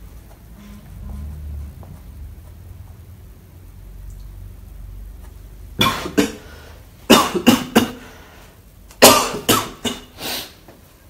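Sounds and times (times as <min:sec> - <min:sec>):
man coughing: 0:07.1 - 0:08.0, 0:09.0 - 0:10.1.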